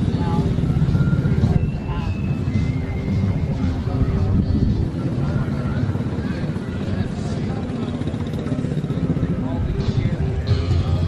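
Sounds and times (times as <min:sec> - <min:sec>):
engine running low rumble: 0:00.0 - 0:11.0.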